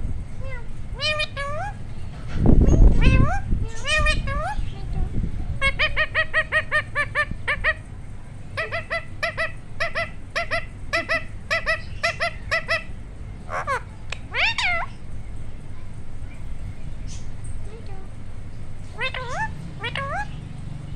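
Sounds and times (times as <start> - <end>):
parakeet calling: 0.9 - 20.9.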